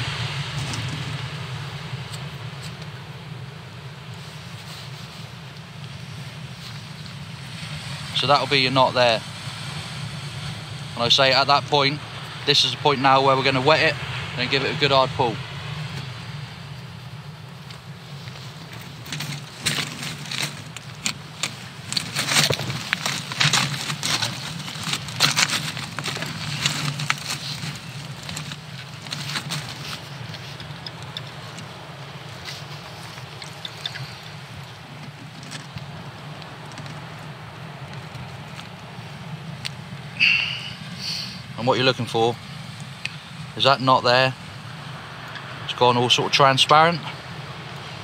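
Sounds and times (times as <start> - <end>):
fabric rustling on microphone: 4.2 - 5.4, 17.8 - 36.0.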